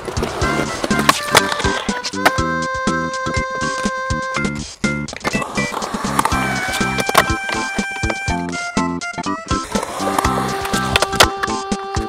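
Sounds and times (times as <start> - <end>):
skateboard popping crack: 0.0 - 2.4, 5.1 - 8.6, 9.7 - 11.6
background music with bass line: 0.0 - 12.0
skateboard wheels rolling on concrete: 0.0 - 12.0.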